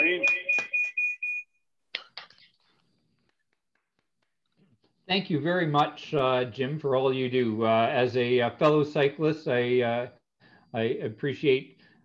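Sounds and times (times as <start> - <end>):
hand claps: 0.0 - 1.0, 3.1 - 4.8
steady high tone: 0.0 - 1.4.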